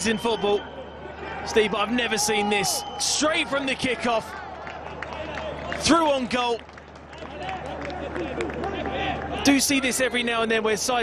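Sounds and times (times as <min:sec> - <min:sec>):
crowd shouting: 0:00.0 - 0:05.7.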